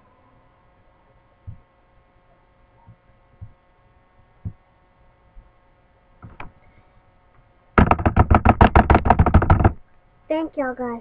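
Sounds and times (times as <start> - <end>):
faint electrical hum: 0.0 - 11.0
soft dull low thumps: 1.4 - 1.7, 2.8 - 3.6, 4.4 - 4.7.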